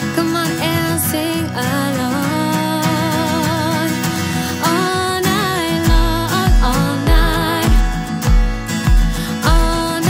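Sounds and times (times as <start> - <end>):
woman singing: 0.0 - 8.3, 8.9 - 10.0
acoustic guitar strumming: 0.0 - 10.0
kick drum thumping: 5.9 - 9.9.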